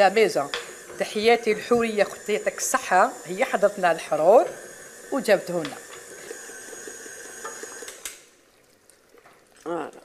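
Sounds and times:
meat sizzling in a pot: 0.0s - 8.3s.

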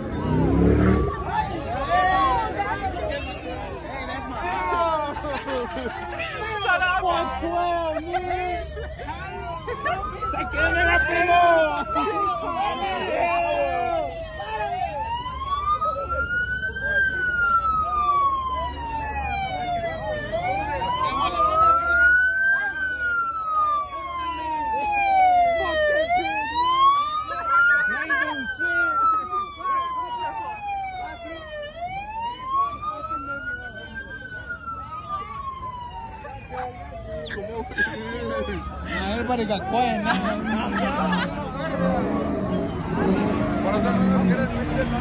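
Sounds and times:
emergency siren wailing: 0.0s - 45.0s.

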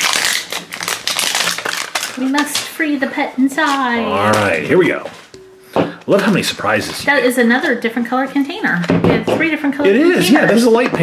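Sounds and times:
plastic wrapping crackling: 0.0s - 5.3s.

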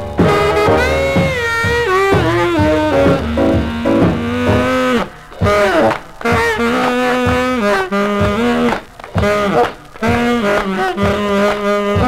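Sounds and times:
tenor saxophone honking: 0.0s - 12.0s.

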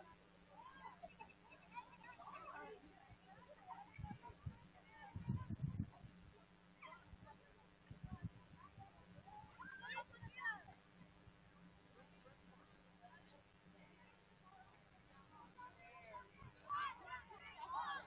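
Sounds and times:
faint distant voices: 0.0s - 18.0s
low microphone hum: 0.0s - 18.0s.

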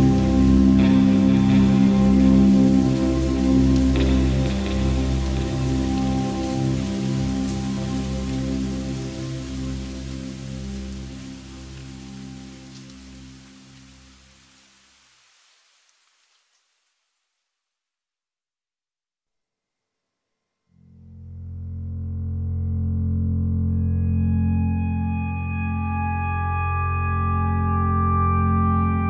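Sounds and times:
electronic chill music: 0.0s - 9.9s, 22.5s - 29.0s
rain-like hiss: 0.0s - 17.8s.

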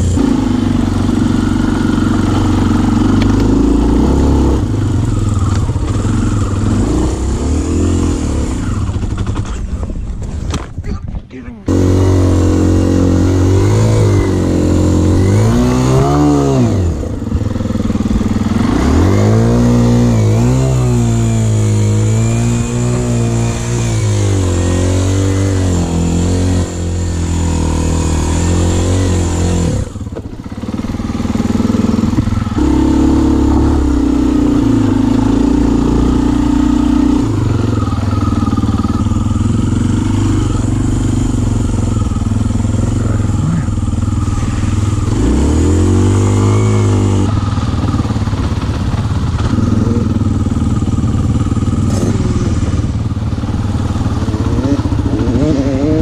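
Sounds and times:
dirt bike engine revving: 0.0s - 9.8s, 11.6s - 56.0s.

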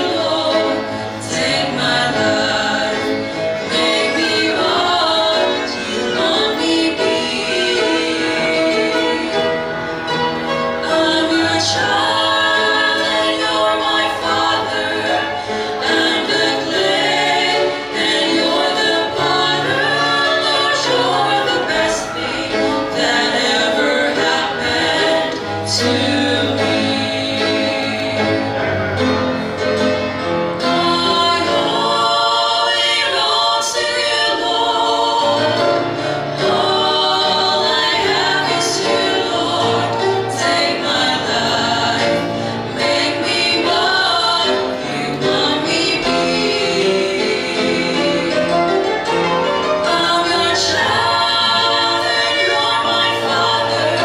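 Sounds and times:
women singing in harmony: 0.0s - 28.7s, 30.5s - 48.9s, 49.6s - 54.0s.

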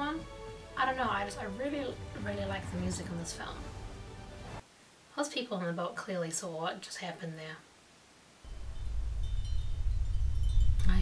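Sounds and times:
low rumble: 0.3s - 4.6s, 8.5s - 11.0s
faint high chime-like tones: 8.5s - 11.0s.

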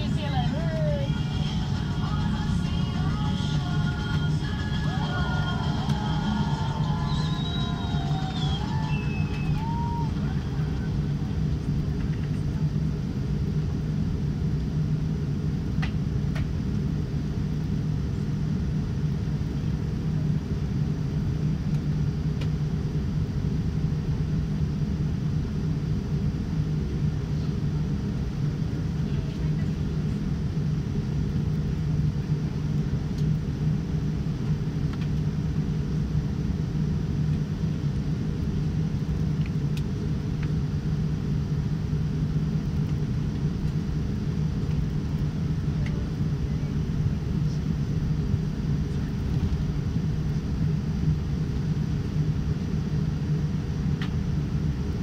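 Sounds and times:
airliner cabin rumble: 0.0s - 55.0s
constant hum: 0.0s - 55.0s.

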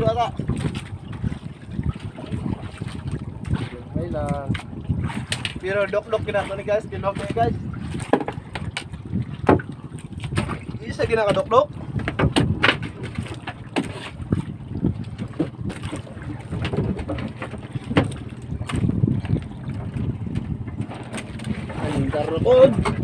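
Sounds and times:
man talking: 0.0s - 0.4s, 3.6s - 4.6s, 5.6s - 7.6s, 10.8s - 11.7s, 21.8s - 23.0s
sea: 0.0s - 23.0s
wind: 0.0s - 23.0s
light knocks on boat: 8.0s - 10.6s, 12.0s - 14.1s, 15.2s - 19.4s.

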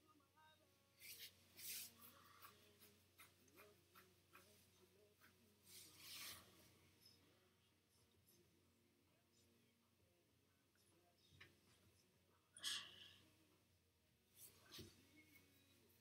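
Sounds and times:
clothing rustling: 1.0s - 2.6s.

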